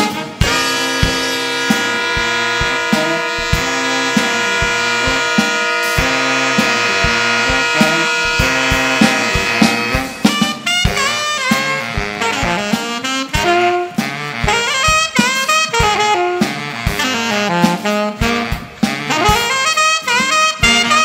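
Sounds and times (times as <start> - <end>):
drum kit: 0.0 - 21.0
saxophone ensemble playing funk: 0.0 - 21.0.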